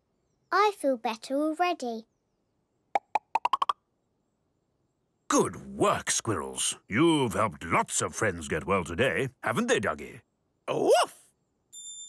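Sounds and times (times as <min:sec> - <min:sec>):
rising cartoon blips: 0:03.0 - 0:03.8.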